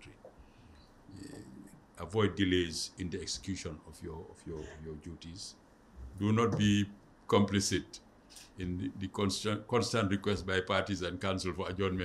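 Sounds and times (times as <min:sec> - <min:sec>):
low room noise: 0:00.0 - 0:12.0
soft breath: 0:00.3 - 0:01.8.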